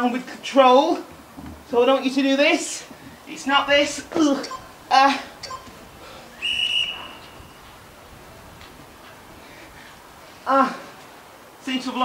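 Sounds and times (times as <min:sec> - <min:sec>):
high steady whistle-like tone: 0:06.3 - 0:07.8.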